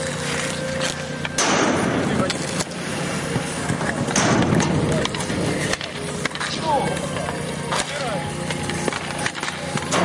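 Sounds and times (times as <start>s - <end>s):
skate wheels rolling on asphalt: 0.0s - 1.4s, 2.0s - 9.9s
hockey sticks clacking: 0.0s - 10.0s.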